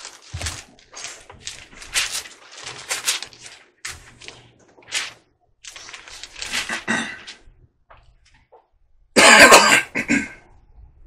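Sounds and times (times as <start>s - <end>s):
man coughing: 6.7s - 7.3s, 9.2s - 10.5s.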